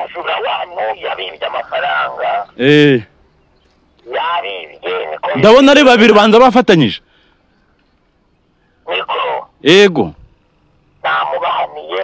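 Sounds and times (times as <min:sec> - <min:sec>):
man talking into a microphone: 0:04.1 - 0:07.0.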